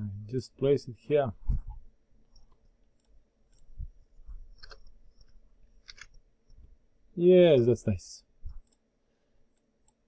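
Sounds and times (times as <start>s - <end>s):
computer mouse clicks: 2.3s - 3.8s, 4.5s - 6.6s, 8.5s - 8.9s, 9.5s - 10.0s.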